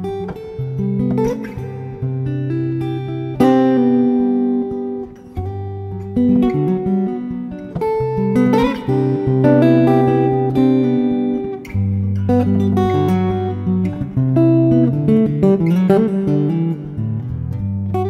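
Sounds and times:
acoustic guitar piece: 0.0s - 18.0s.

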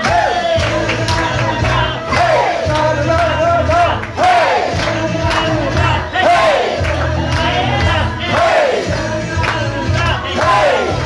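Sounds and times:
crowd singing and shouting: 0.0s - 11.0s
loud music with heavy bass: 0.0s - 11.0s.

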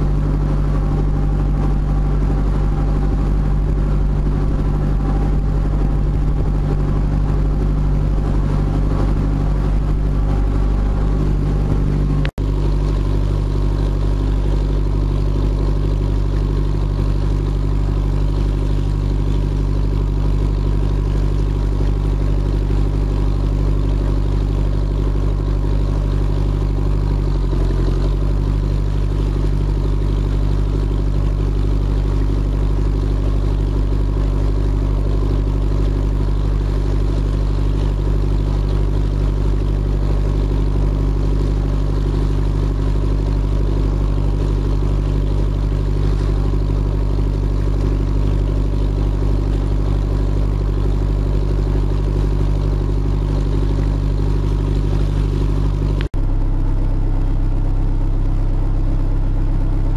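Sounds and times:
diesel engine droning: 0.0s - 59.9s.

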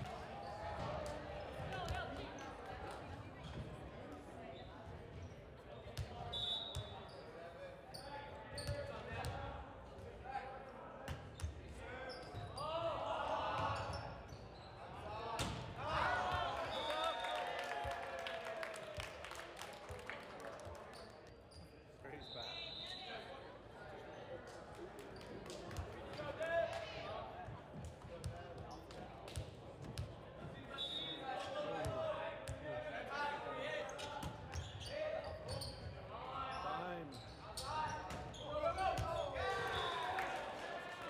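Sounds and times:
referee's whistle: 6.2s - 7.0s, 16.5s - 17.6s, 22.1s - 23.3s, 30.7s - 31.4s, 39.4s - 40.3s
players calling and shouting: 30.5s - 41.0s.

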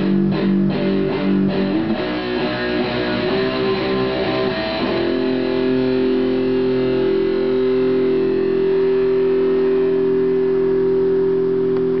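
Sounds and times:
electric guitar sustained chord: 0.0s - 12.0s.

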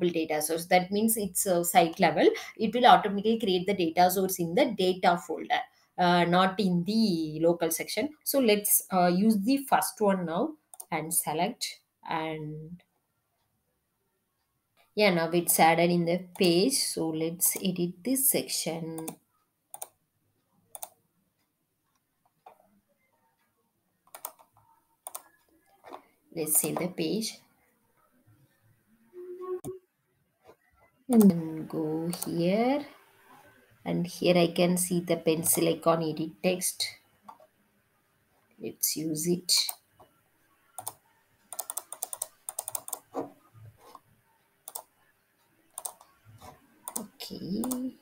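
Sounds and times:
computer mouse and key clicks: 10.7s - 11.0s, 16.2s - 16.6s, 19.0s - 20.0s, 20.7s - 22.8s, 23.4s - 27.0s, 30.4s - 32.4s, 37.2s - 37.5s, 39.6s - 48.0s
keyboard typing: 10.7s - 11.0s, 16.2s - 16.7s, 19.0s - 20.0s, 20.7s - 21.0s, 24.0s - 27.0s, 30.4s - 32.4s, 39.5s - 48.0s.

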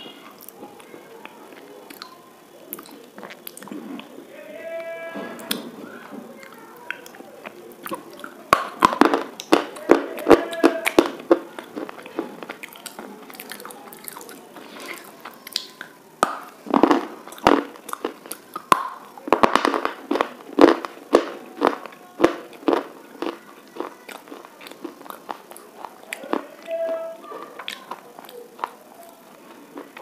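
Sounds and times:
crunchy biting and chewing: 0.2s - 4.2s, 4.8s - 5.7s, 6.4s - 30.0s.

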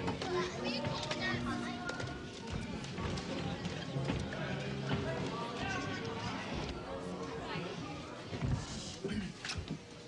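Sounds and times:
background music: 0.0s - 10.0s
indistinct chatter of voices: 0.0s - 10.0s.

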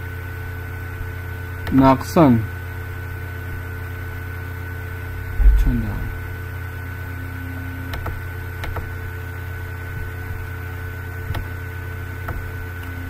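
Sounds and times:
electrical hum and hiss: 0.0s - 13.0s
computer mouse clicks: 7.9s - 8.9s.

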